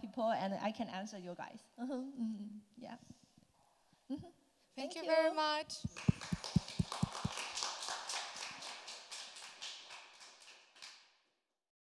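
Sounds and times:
audience applauding: 0:05.9 - 0:11.0.

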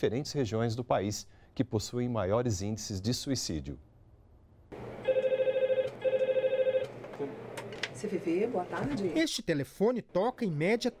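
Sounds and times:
electronic telephone ringing: 0:05.0 - 0:06.9.

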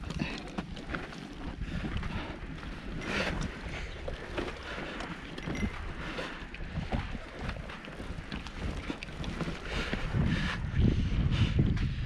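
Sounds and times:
bicycle crunching over dirt road: 0:00.0 - 0:10.8
wind buffeting microphone: 0:00.0 - 0:12.0.

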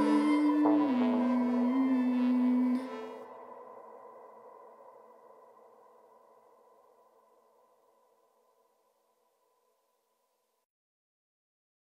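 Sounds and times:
sustained final music chord: 0:00.0 - 0:03.2.

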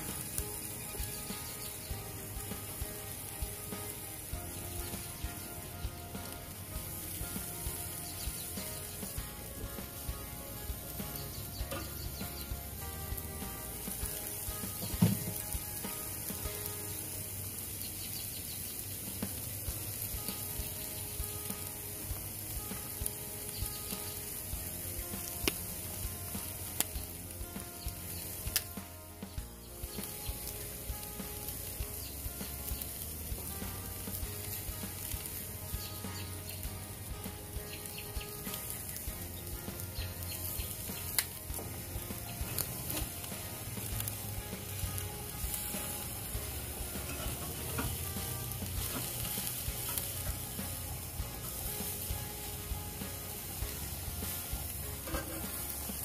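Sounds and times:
faint background music: 0:00.0 - 0:56.0
fat crackling and popping: 0:00.0 - 0:56.0
steaks sizzling on grill: 0:00.0 - 0:56.0.

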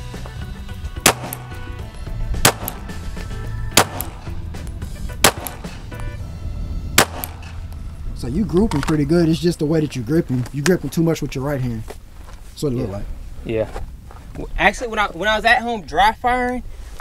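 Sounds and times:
music playing: 0:00.0 - 0:09.4
pistol shots: 0:01.0 - 0:01.8, 0:02.4 - 0:03.1, 0:03.7 - 0:04.4, 0:05.2 - 0:05.9, 0:07.0 - 0:07.6.

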